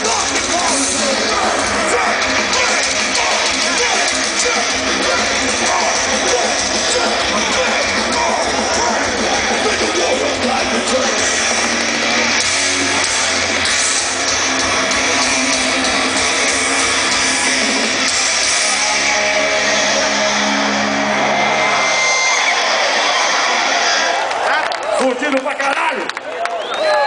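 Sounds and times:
thrash metal band playing live: 0.0s - 24.3s.

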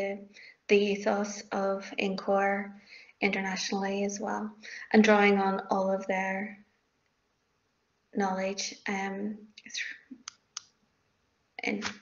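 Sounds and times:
woman speaking: 0.0s - 6.7s, 8.2s - 10.1s, 11.6s - 12.0s.

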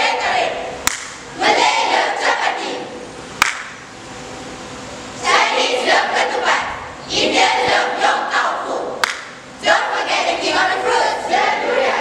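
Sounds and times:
hall room noise: 0.0s - 12.0s
sharp click: 0.9s - 1.2s, 3.4s - 3.8s.

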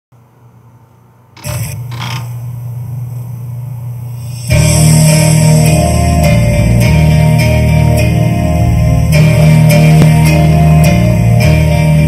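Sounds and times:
low electrical hum: 0.2s - 12.0s.

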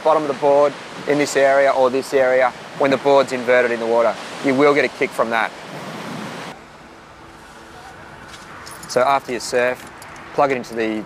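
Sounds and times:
surf: 0.0s - 6.6s
wind: 0.0s - 11.0s.

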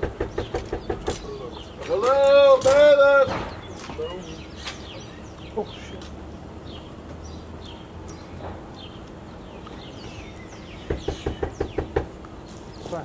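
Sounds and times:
knocking on front door: 0.0s - 1.2s, 10.8s - 12.1s
birds chirping: 0.0s - 13.0s.

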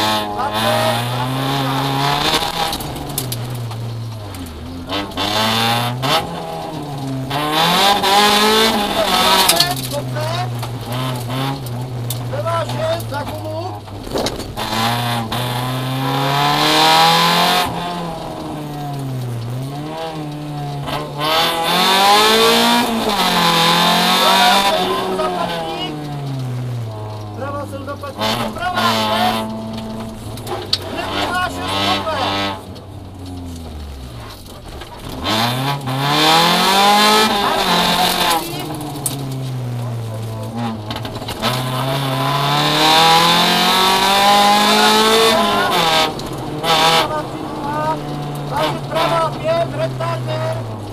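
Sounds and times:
rally car engine revving: 0.0s - 50.9s.

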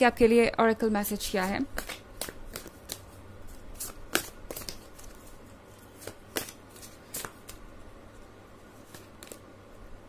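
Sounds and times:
cards being shuffled: 1.4s - 7.7s, 8.6s - 9.5s.

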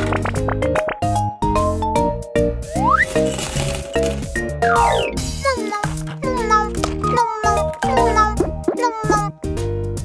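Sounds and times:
bouncy background music: 0.0s - 10.0s
candies clattering into paper bag: 3.0s - 4.4s, 5.4s - 7.1s.

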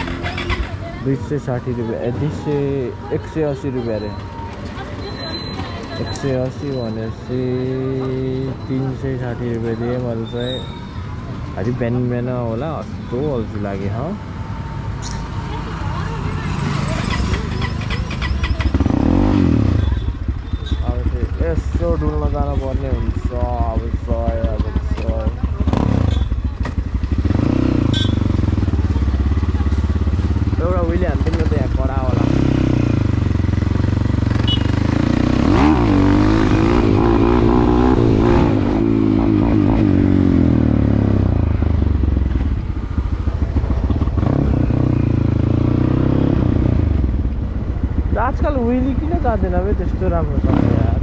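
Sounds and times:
voices: 0.0s - 33.6s, 47.9s - 51.0s
dirt bike engine revving: 16.0s - 51.0s.

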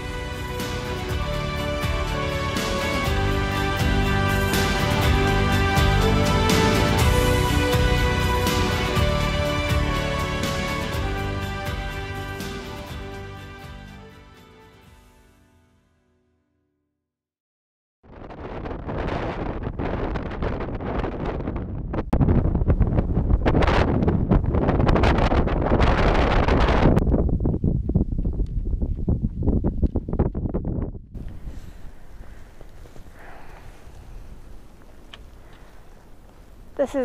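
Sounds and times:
wind buffeting microphone: 18.1s - 37.0s.

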